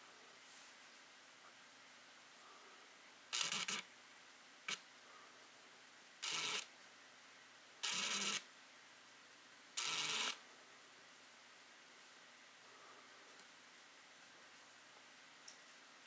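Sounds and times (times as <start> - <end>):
faint hiss: 0.0 - 16.0
camera shutter bursts: 3.3 - 3.8, 6.2 - 6.7, 7.8 - 8.4, 9.8 - 10.4
camera shutter click: 3.4 - 3.8, 6.2 - 6.7, 9.8 - 10.4.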